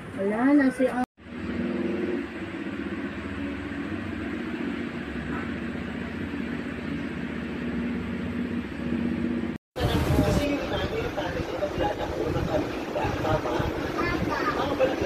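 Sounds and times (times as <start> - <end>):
electric fan running: 0.0 - 15.0.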